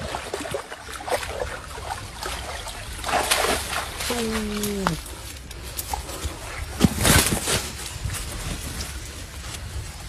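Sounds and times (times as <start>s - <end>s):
fish slapping on mud: 3.0s - 7.8s.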